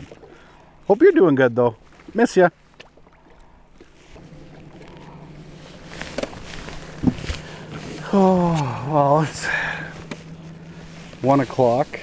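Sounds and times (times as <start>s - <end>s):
water around boat: 0.0s - 12.0s
wind: 0.0s - 12.0s
steady low hum: 1.7s - 12.0s.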